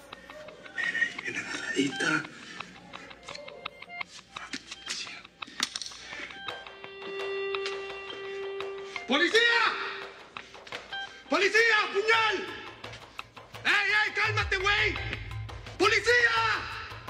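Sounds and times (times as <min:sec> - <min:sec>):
suspenseful background music: 0:00.0 - 0:17.0.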